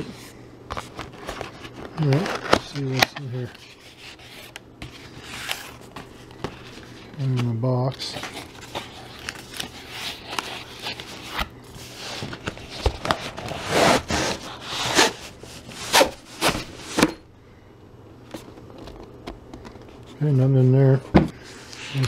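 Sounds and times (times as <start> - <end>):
faint hum: 0.0 - 22.0
cardboard box rustling and scraping: 8.0 - 17.2.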